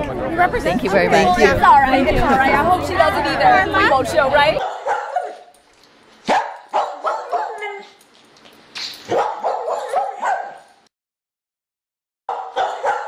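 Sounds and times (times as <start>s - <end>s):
dog barking: 4.6s - 5.5s, 6.3s - 8.0s, 9.1s - 10.7s, 12.3s - 13.0s.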